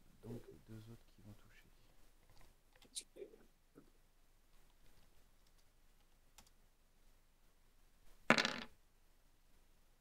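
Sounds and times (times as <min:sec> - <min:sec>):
dice clattering on a table: 0:08.2 - 0:08.8.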